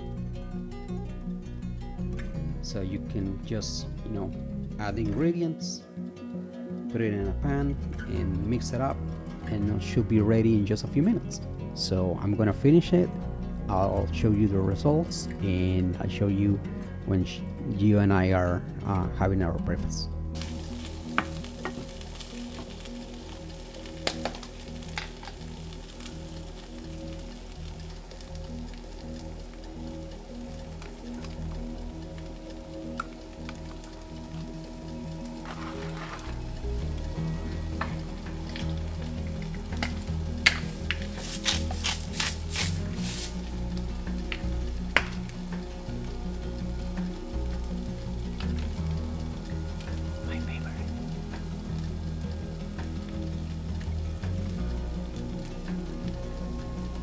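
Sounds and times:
rice and beans sizzling in skillet: 20.4s - 57.0s
seasoning bottle clicks: 39.5s - 42.7s
wooden spoon stirring: 39.8s - 43.5s.

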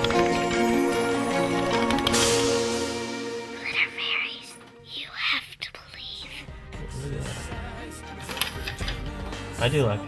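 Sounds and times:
background music: 0.0s - 10.0s
person whispering: 3.6s - 6.5s.

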